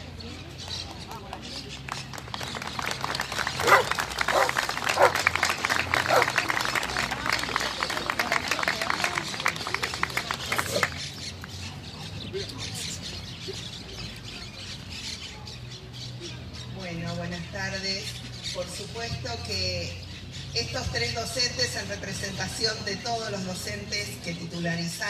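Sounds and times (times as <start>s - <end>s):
small crowd applauding: 1.2s - 11.6s.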